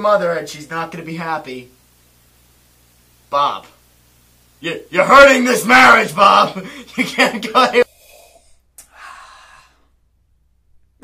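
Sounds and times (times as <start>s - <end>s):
soft breathy exhale: 7.9s - 9.9s.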